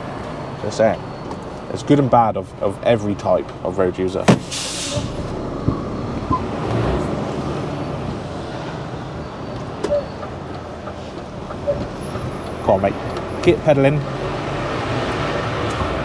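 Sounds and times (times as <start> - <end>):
lorry diesel engine: 0.0 - 16.0
road noise: 0.0 - 16.0.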